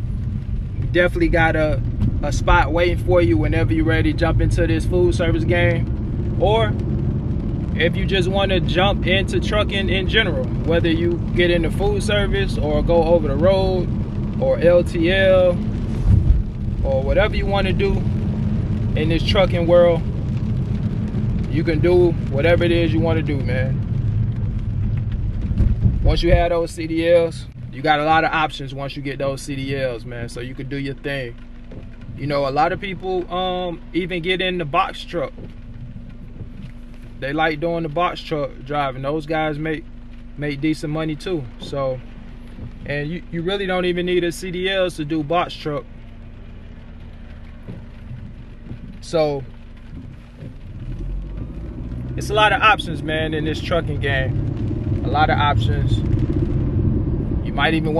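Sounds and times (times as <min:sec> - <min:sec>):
car cabin road rumble: 0:00.0 - 0:57.9.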